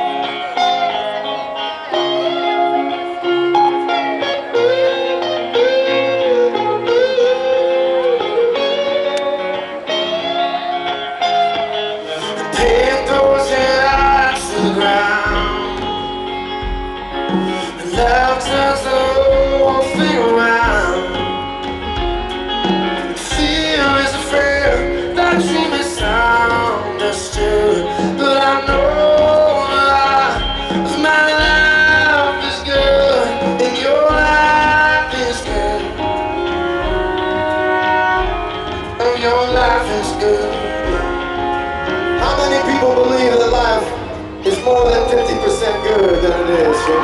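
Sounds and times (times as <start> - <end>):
guitar solo: 0.0 - 47.0
live band playing: 0.0 - 47.0
person singing: 0.0 - 47.0.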